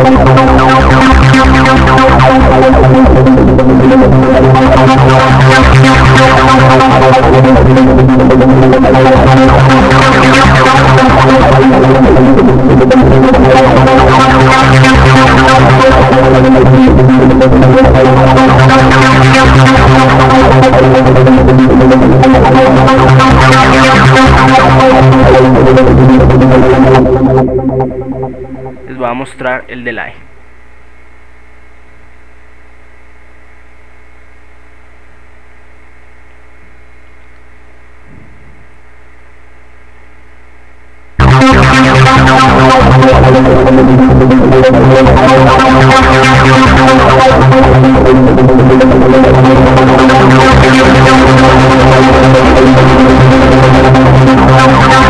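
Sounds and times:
constant low synth bass: 0.0 - 55.0
arpeggiated synth tones: 22.5 - 30.3
electrical mains hum: 24.2 - 45.6.

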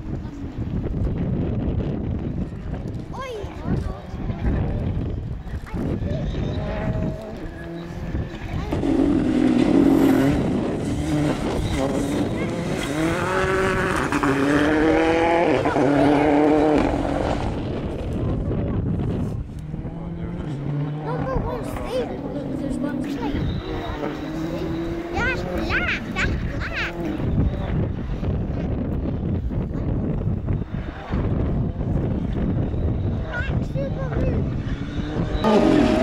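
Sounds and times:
rally car engine revving: 4.0 - 36.0.

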